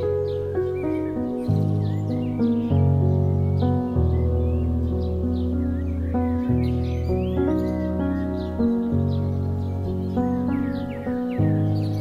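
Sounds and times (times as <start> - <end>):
calm slow instrumental music: 0.0 - 12.0
faint bird chirps: 0.0 - 12.0.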